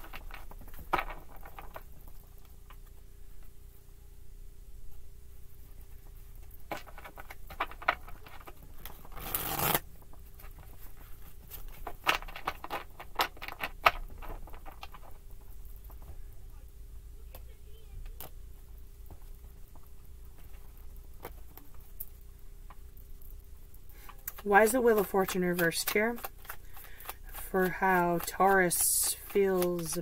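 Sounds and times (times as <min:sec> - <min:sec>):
cards being shuffled: 0:06.6 - 0:16.2, 0:24.0 - 0:30.0.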